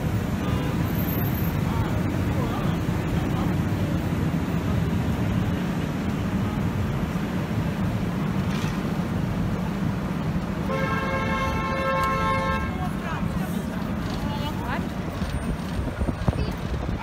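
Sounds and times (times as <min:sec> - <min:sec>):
crowd noise: 0:00.0 - 0:17.0
street traffic: 0:00.0 - 0:17.0
vehicle horn blast: 0:10.7 - 0:12.9.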